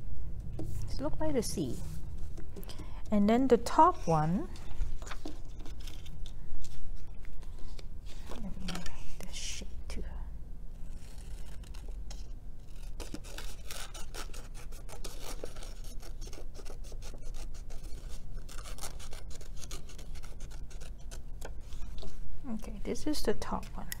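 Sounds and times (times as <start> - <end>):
paper rustling: 4.5 - 8.8
scissors snipping paper: 10.9 - 22.1.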